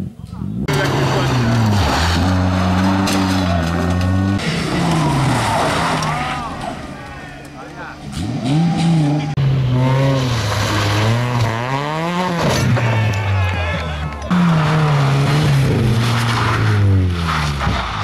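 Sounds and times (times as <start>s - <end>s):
rally car engines revving: 0.0s - 18.0s.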